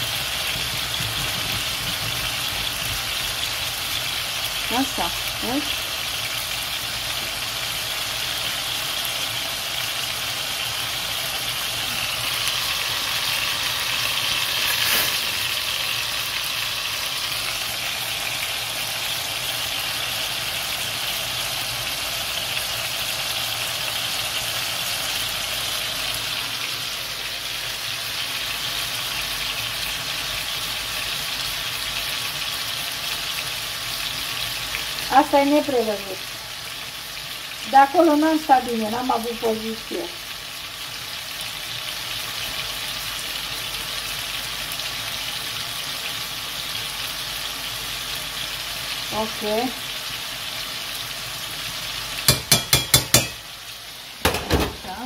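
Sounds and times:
chicken sizzling in a pan: 0.0 - 55.0.

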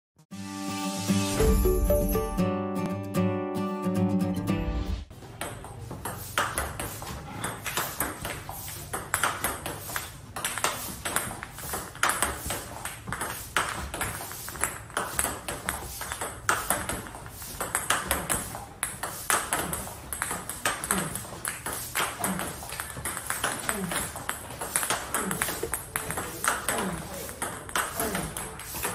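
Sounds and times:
music jingle: 0.3 - 5.0
table tennis ball hits: 5.2 - 28.9.

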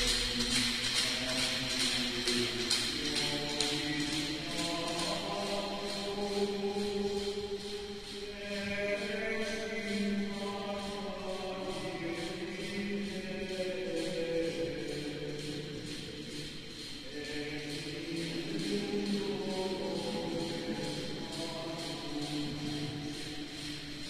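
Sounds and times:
voices singing a chant: 0.0 - 24.0.

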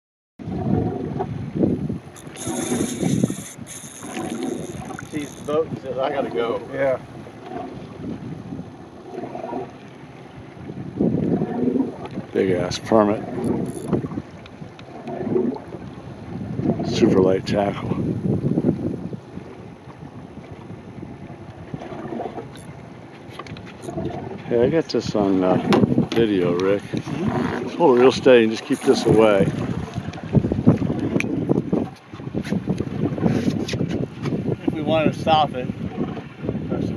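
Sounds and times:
wind on microphone: 0.4 - 36.9
fishing reel drag buzzing: 2.1 - 5.7, 13.3 - 14.1, 22.4 - 22.8, 28.6 - 29.4.

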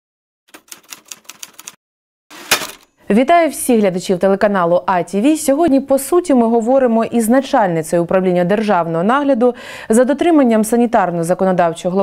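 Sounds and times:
typewriter key clacks: 0.5 - 1.8.

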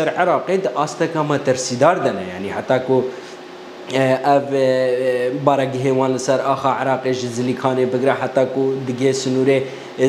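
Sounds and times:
man speaking: 0.0 - 3.2, 3.9 - 10.0.

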